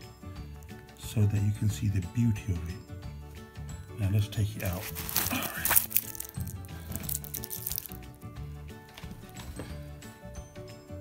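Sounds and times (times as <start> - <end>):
background music: 0.0 - 11.0
packaging crinkling and rustling: 4.7 - 8.0.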